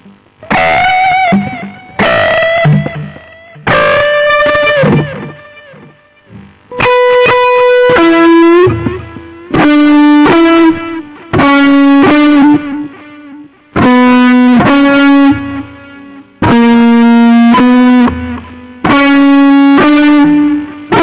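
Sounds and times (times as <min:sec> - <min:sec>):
distorted electric guitar lead: 0:00.0 - 0:21.0.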